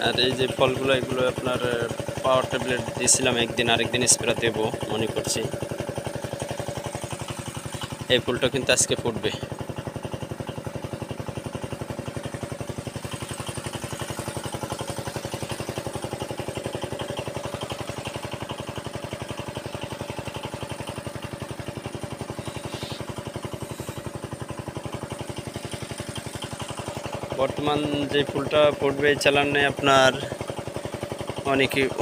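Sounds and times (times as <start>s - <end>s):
pump engine running steadily: 0.0s - 32.0s.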